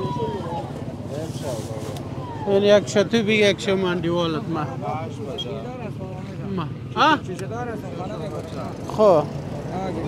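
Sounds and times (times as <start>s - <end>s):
background traffic hum: 0.0s - 10.0s.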